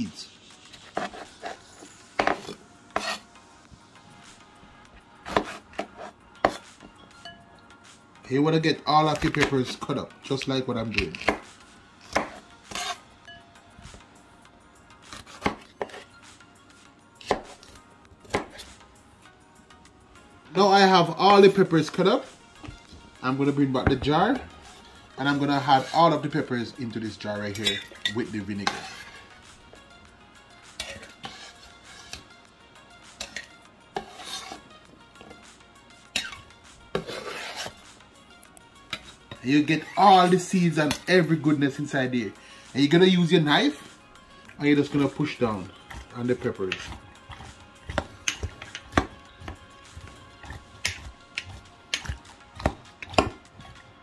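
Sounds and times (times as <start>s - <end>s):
knife scraping on wooden board: 0.7s - 3.3s, 5.2s - 6.7s, 12.1s - 13.0s, 15.1s - 16.1s, 25.4s - 26.3s, 27.5s - 29.3s, 30.7s - 32.3s, 33.2s - 35.4s, 36.1s - 38.0s, 44.8s - 53.9s.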